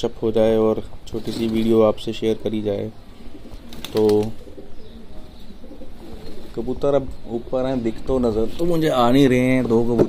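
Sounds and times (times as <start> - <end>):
pigeons cooing: 1.1 - 9.0.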